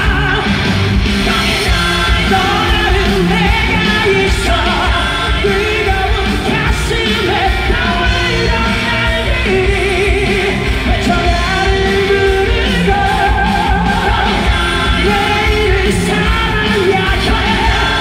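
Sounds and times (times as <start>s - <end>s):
live song with male singer: 0.0s - 18.0s.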